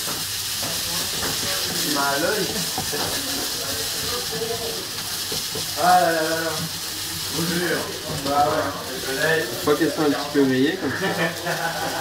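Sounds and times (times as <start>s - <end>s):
prawns sizzling in a pan: 0.0s - 12.0s.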